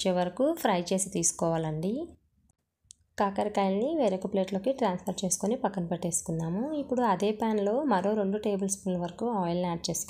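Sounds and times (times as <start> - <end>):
person narrating: 3.2 - 10.0.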